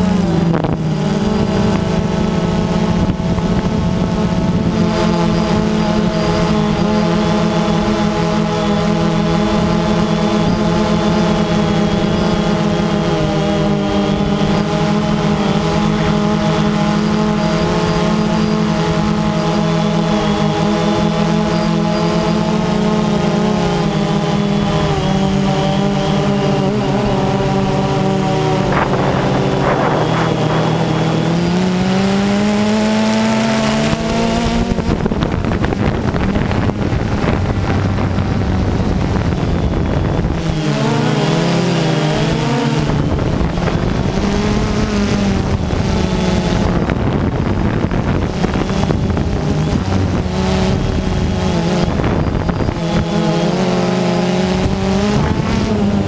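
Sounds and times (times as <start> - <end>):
drone propellers buzzing: 0.0 - 56.0.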